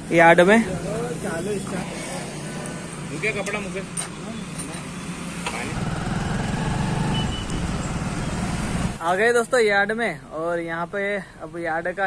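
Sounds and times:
motorcycle engine starting and running: 5.2 - 9.0.

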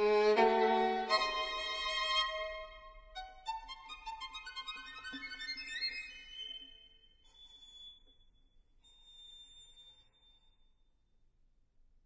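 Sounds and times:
high violin note: 0.0 - 4.2.

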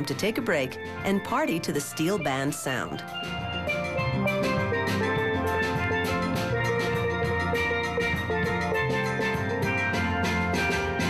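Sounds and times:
steel band playing: 0.0 - 11.0.

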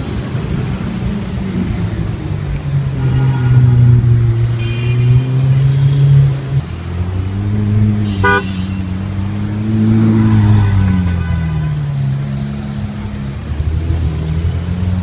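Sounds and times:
car horn toot: 3.0 - 6.4, 8.0 - 9.0.

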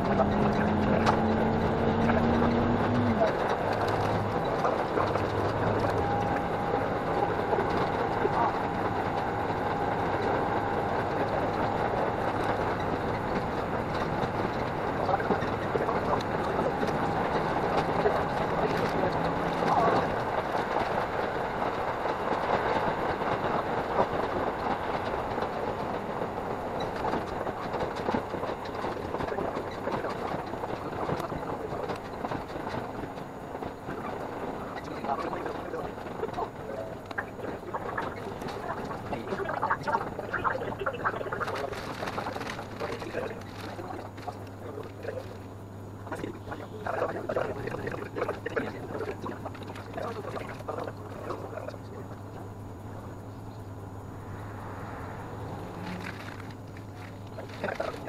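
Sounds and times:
railcar engine and wheel noise: 0.0 - 58.0.

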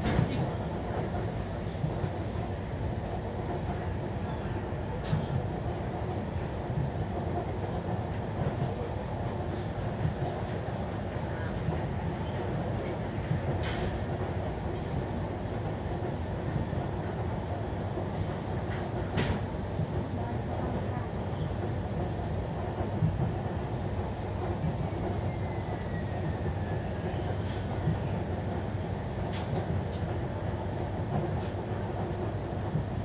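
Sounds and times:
train carriage rumble: 0.0 - 33.0.

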